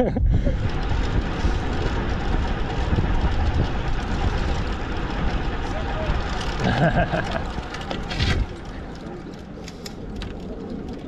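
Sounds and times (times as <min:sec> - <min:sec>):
wind noise on microphone: 0:00.0 - 0:08.9
tyres rumbling on tarmac: 0:00.0 - 0:11.0.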